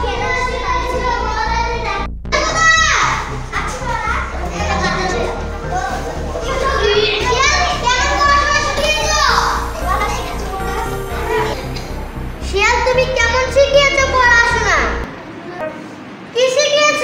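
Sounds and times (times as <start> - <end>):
background music with low beat: 0.0 - 15.1
children shouting and chattering: 0.0 - 17.0.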